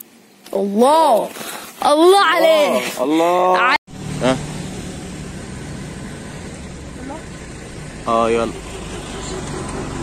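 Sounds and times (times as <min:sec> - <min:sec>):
engine running steadily: 0:03.9 - 0:10.0.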